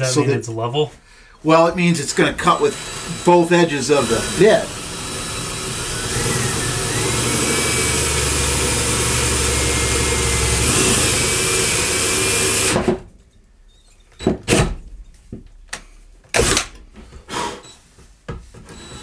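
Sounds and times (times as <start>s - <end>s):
cordless drill boring through plywood: 2.4s - 13.0s, 18.7s - 19.0s.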